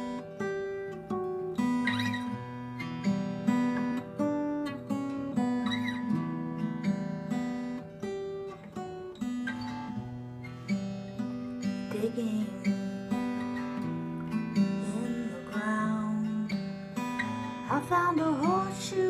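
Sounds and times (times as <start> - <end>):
strummed acoustic guitar chords: 0.0 - 19.0.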